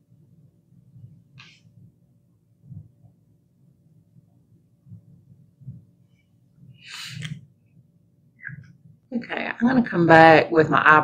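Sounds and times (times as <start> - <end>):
soft low thumps: 2.6 - 3.2, 4.8 - 6.0.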